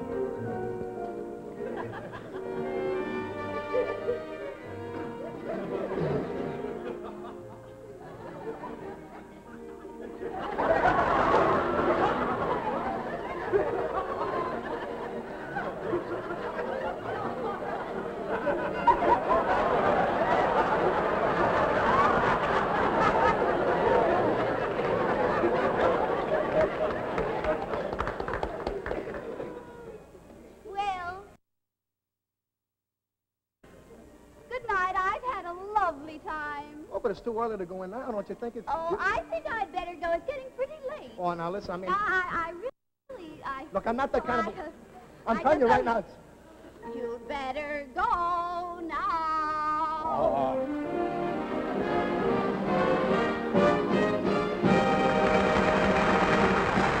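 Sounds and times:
orchestra with brass playing: 50.1 - 57.0.

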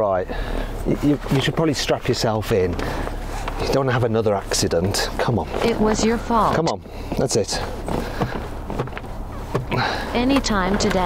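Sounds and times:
car cabin low hum: 0.0 - 11.0
seatbelt webbing rustling: 0.3 - 11.0.

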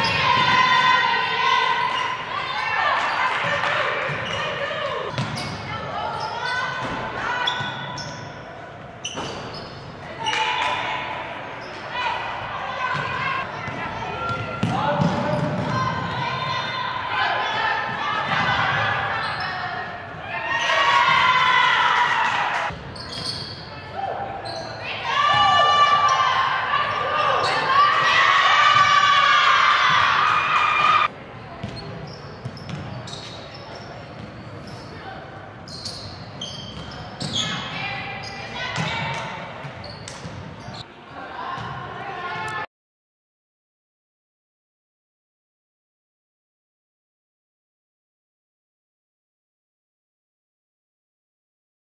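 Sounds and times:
people shouting in a hall: 0.0 - 5.1, 10.1 - 22.8, 23.7 - 31.1.

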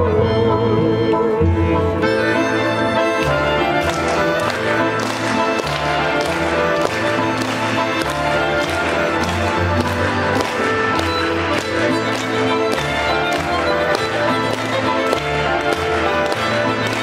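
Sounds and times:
folk dance tune on strings: 0.0 - 17.0
sharp rhythmic taps: 3.1 - 17.0.

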